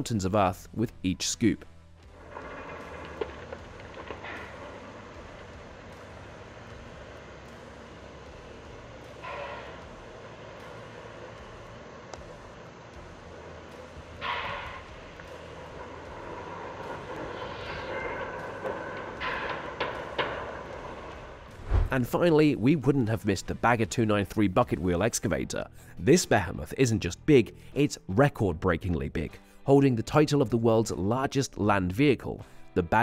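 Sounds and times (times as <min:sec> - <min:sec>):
power shovel machinery drone: 0:01.9 - 0:23.7.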